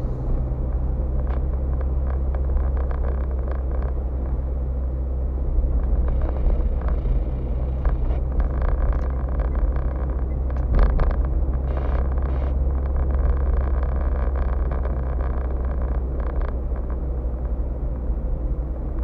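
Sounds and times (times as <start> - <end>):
car engine and road drone: 0.0 - 19.0
knocks and rattles in car: 5.9 - 17.5.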